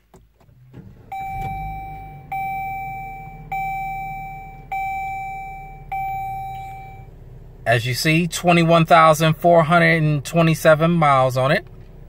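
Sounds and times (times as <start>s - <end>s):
car engine starting and idling: 0.0s - 12.0s
dashboard warning chime: 1.0s - 7.1s.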